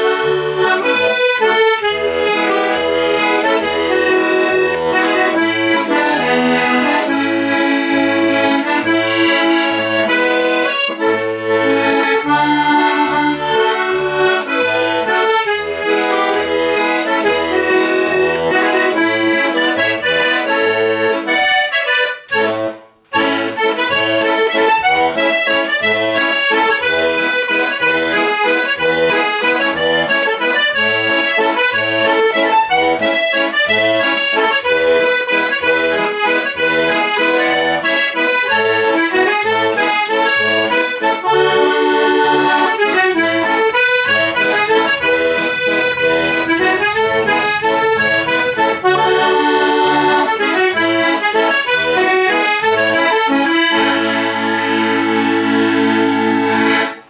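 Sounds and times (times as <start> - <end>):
button accordion playing a tune: 0.0 - 57.0.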